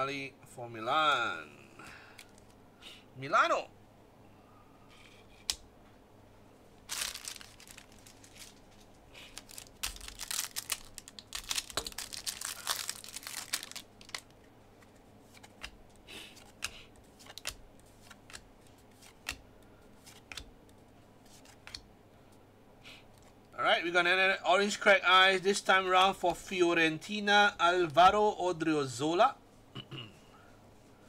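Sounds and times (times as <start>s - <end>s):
trading cards rustling: 6.9s - 19.4s.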